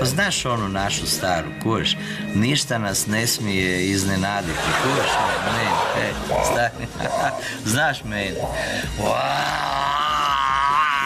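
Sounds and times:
man's drawn-out vocal aaah: 9.0 - 11.0.

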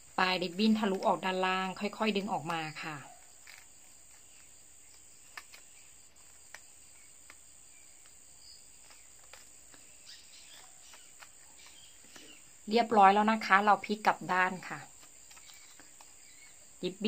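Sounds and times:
crickets droning: 0.0 - 17.0
ribbon clicks and rustles: 2.0 - 12.4, 14.8 - 16.4.

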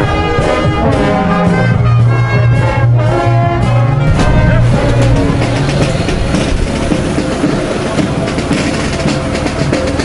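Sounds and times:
held brass notes: 0.0 - 10.0
marching band drumming: 0.0 - 10.0
street noise: 0.0 - 10.0.

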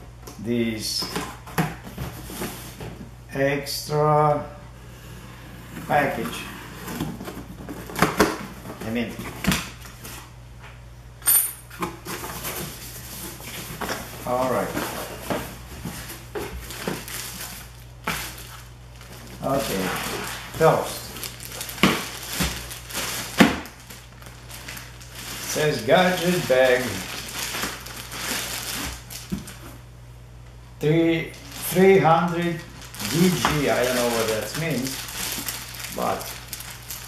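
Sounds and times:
plastic wrapping rustling: 12.0 - 29.9, 30.9 - 37.0.

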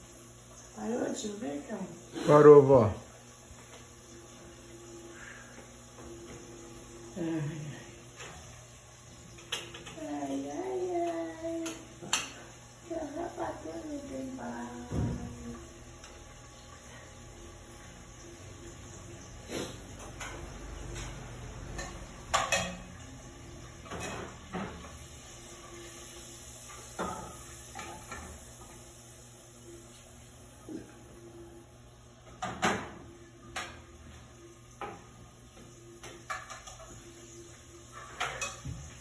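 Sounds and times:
metal pots and lids clinking: 20.0 - 23.1, 36.0 - 36.9, 37.9 - 39.0.

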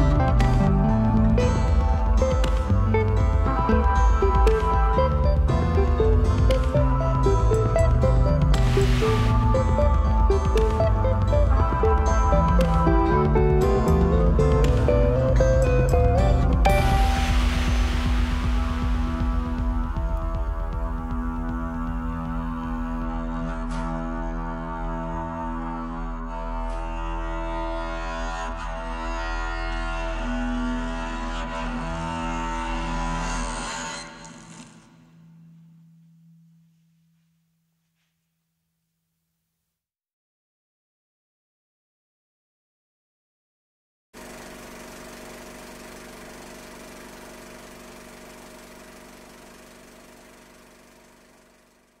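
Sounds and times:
progressive rock instrumental: 0.0 - 22.9
film projector whirring: 44.2 - 52.0.

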